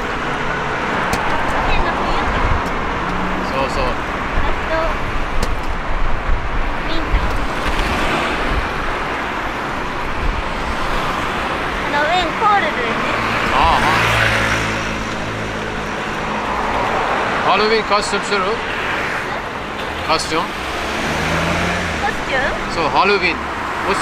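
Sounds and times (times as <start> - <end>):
cars going by: 0.0 - 24.0
vehicle passing close: 0.0 - 24.0.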